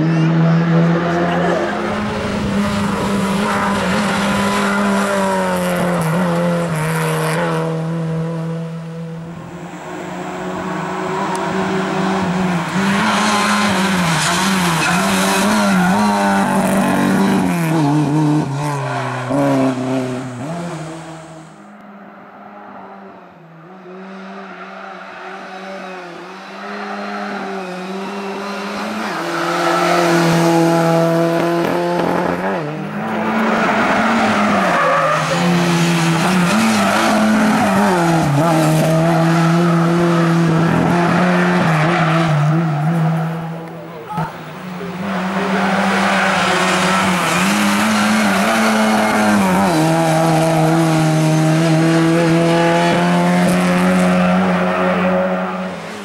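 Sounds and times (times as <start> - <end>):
race car engine revving: 0.0 - 56.0.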